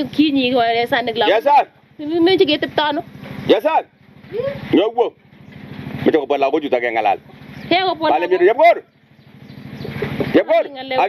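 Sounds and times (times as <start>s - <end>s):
engine running with low pulsing: 0.0s - 11.0s.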